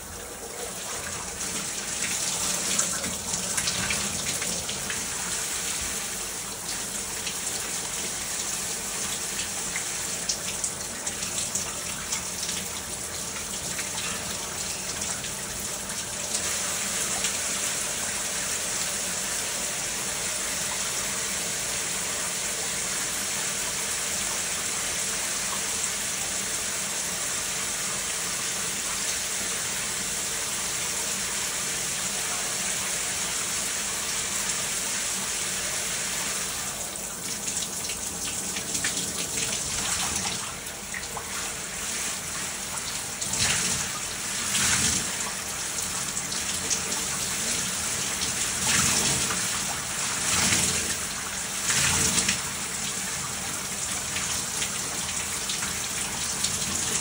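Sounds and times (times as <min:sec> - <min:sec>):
shower water splashing on tiles: 0:00.0 - 0:19.3, 0:22.1 - 0:57.0.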